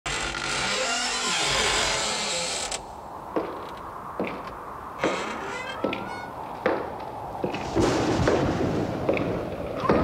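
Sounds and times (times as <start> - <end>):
long creak sliding downward: 0.1 - 2.9, 5.0 - 6.4.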